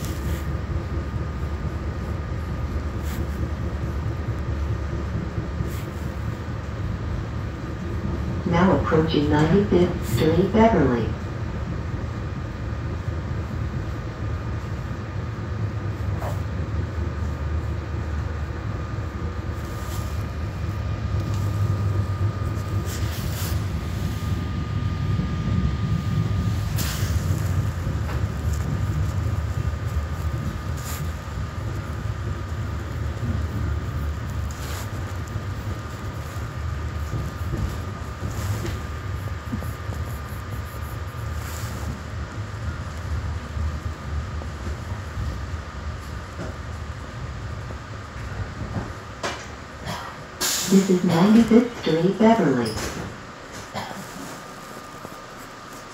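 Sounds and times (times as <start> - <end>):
train rumble from inside coach: 0.0 - 55.9.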